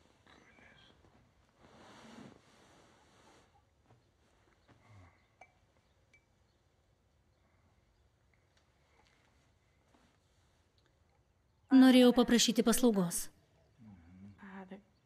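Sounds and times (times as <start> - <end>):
soft rustle: 0.0 - 5.1, 8.2 - 11.4.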